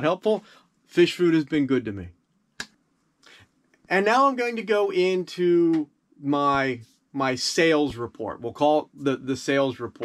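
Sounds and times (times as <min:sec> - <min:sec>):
soft intake of breath: 0:00.4 - 0:00.8
person speaking: 0:03.9 - 0:10.0.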